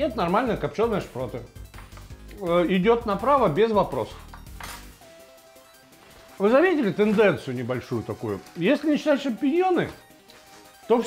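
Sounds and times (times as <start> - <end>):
paper napkin rustling: 4.8 - 11.0.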